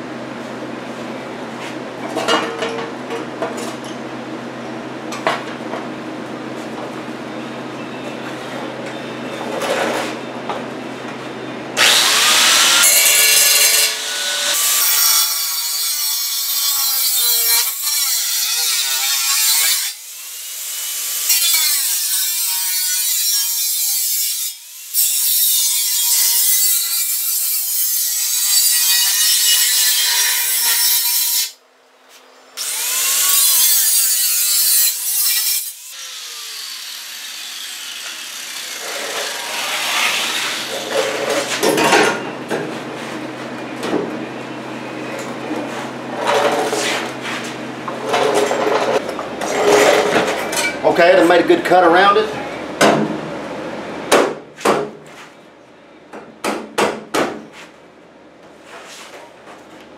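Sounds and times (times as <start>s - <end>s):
angle grinder cutting steel: 11.8s - 31.6s, 32.6s - 41.5s.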